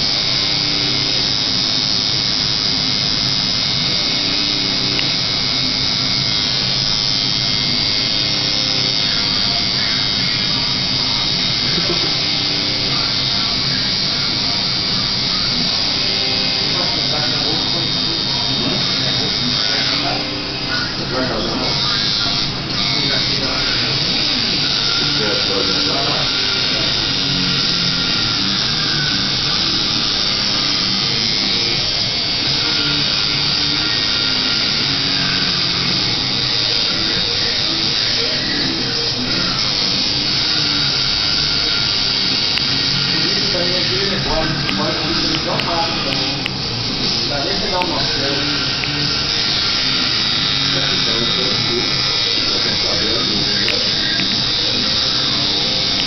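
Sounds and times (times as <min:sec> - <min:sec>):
indistinct voices: 0:00.0 - 0:56.0
tattoo machine buzzing: 0:00.0 - 0:56.0.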